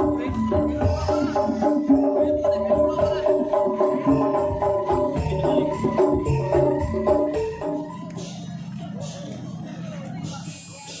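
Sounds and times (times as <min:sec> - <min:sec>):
music over a sound system: 0:00.0 - 0:11.0.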